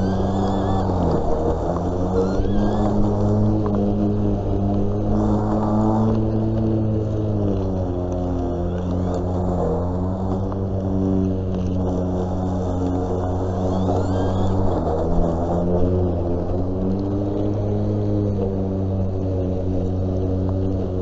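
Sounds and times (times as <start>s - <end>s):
lawn mower motor humming: 0.0s - 21.0s.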